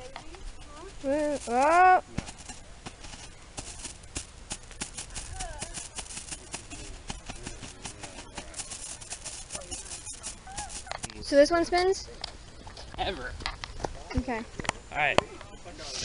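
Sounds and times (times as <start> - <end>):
firework crackling: 0.4 - 11.4.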